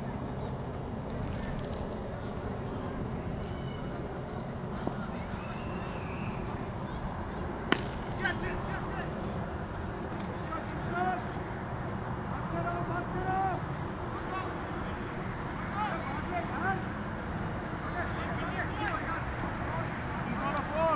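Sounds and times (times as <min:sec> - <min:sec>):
players shouting: 0:02.0 - 0:20.9
cricket bat striking ball: 0:07.6 - 0:08.2.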